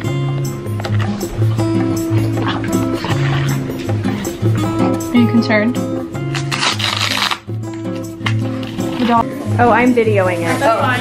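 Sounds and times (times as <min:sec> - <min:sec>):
background music with steady beat: 0:00.0 - 0:11.0
hook-and-loop strap ripping open: 0:06.3 - 0:09.2.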